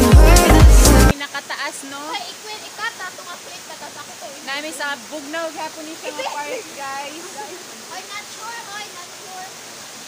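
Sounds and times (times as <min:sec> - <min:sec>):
waterfall rushing into pool: 0:00.0 - 0:10.0.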